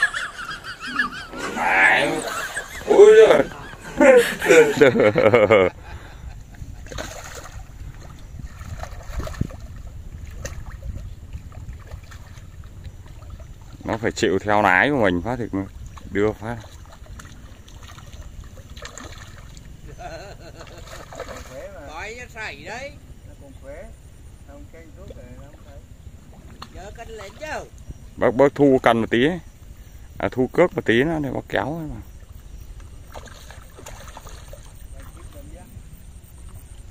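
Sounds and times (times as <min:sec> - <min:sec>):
distant voices talking: 0:00.0 - 0:06.4
wind rumble on microphone: 0:02.2 - 0:36.9
fish splashing at surface: 0:06.8 - 0:14.0, 0:15.8 - 0:19.7, 0:20.6 - 0:21.7, 0:32.9 - 0:35.4.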